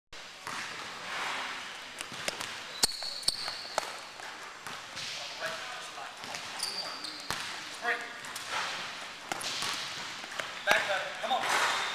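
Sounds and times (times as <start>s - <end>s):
shoes squeaking on gym floor: 0.5s - 11.9s.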